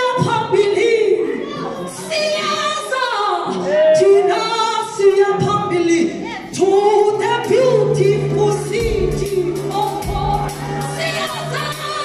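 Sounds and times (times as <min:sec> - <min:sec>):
woman soloist singing: 0:00.0 - 0:12.0
gospel choir singing: 0:08.4 - 0:12.0.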